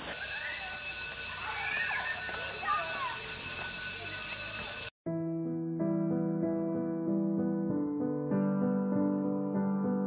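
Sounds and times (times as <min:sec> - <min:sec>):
electric school bell ringing: 0:00.0 - 0:04.9.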